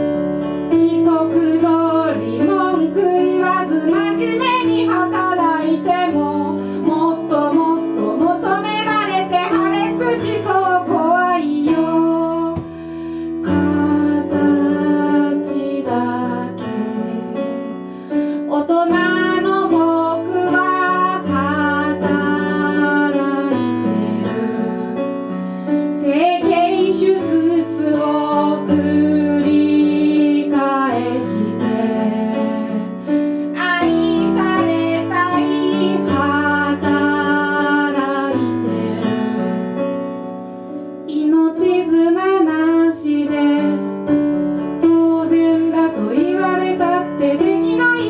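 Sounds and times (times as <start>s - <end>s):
woman singing: 0.7s - 39.7s, 41.1s - 44.2s, 44.8s - 48.0s.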